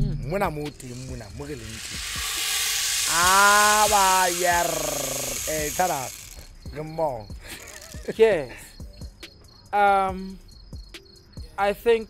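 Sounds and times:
steady hiss: 0.7s - 6.5s.

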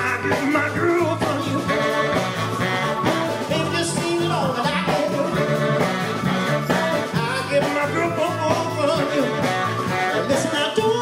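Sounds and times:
saxophone: 0.0s - 11.0s
soul band playing: 0.0s - 11.0s.

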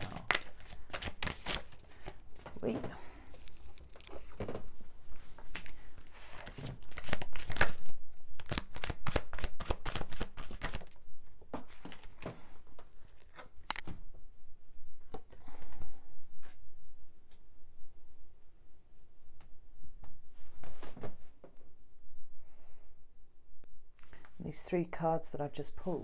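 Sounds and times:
cards being shuffled: 0.0s - 2.7s, 3.3s - 4.8s, 5.4s - 11.0s.

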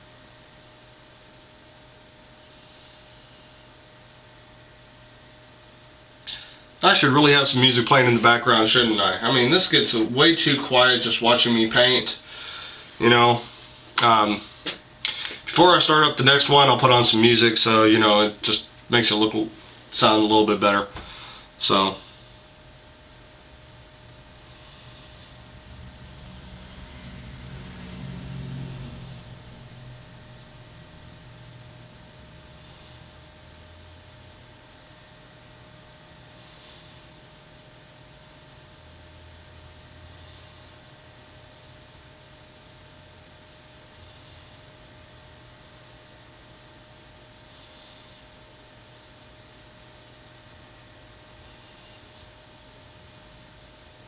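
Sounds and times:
faint hum: 0.0s - 54.0s
low rumble: 23.6s - 32.9s.

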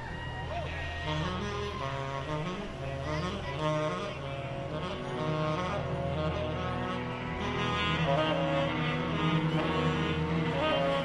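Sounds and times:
bass line: 0.0s - 11.0s
tenor saxophone: 0.2s - 11.0s
live soul band playing: 0.9s - 11.0s.

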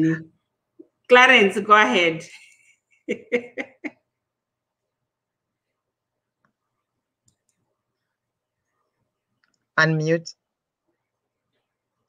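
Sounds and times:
faint clicks: 6.4s - 9.7s.

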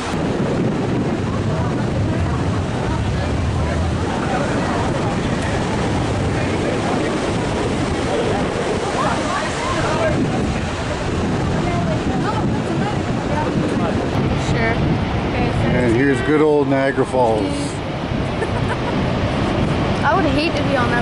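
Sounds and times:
faint voices talking: 0.0s - 21.0s
river rapids rushing: 0.0s - 21.0s
wind on microphone: 0.0s - 21.0s.

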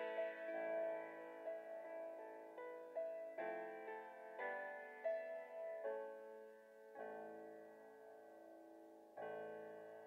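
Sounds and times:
grand piano playing soft chords: 0.0s - 10.0s.

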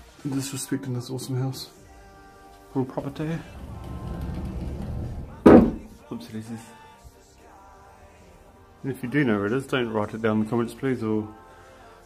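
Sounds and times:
low handling rumble: 3.3s - 5.9s
wooden wardrobe door shutting: 3.5s - 6.0s.

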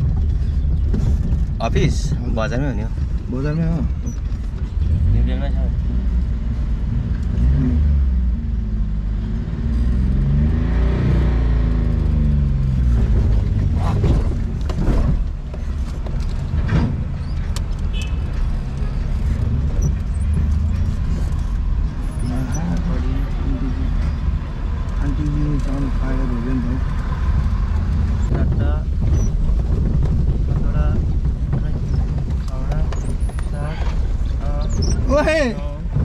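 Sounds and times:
car engine accelerating: 2.6s - 36.0s.

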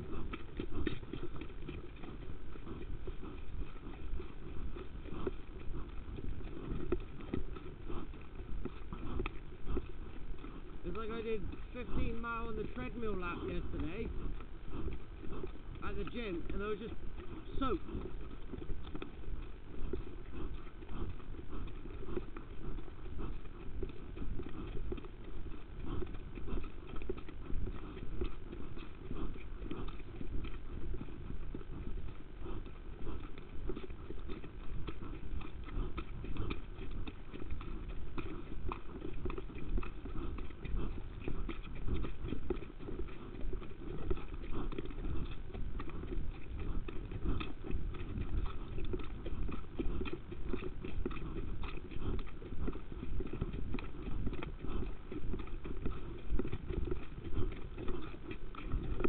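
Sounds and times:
horse hoofbeats: 0.0s - 59.0s.

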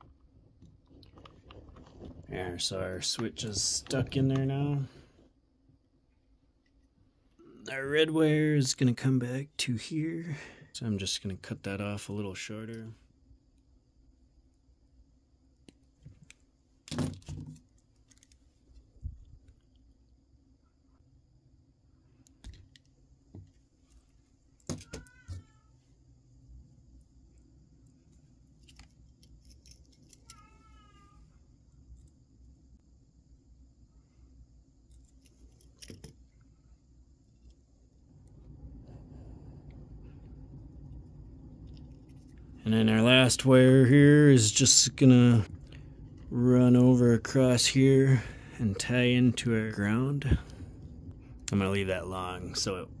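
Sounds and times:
low steady noise: 0.0s - 53.0s
cat meowing: 24.9s - 25.7s, 30.3s - 31.2s.

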